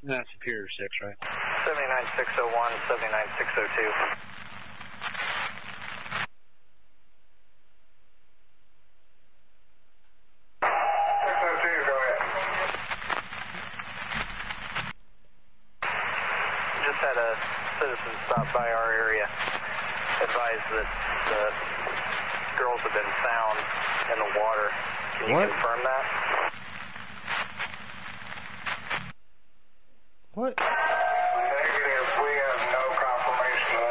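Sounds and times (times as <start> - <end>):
voices over police radio: 0.1 - 4.2, 10.6 - 14.6, 15.8 - 26.5, 30.4 - 33.9
short radio tone: 15.8 - 26.5.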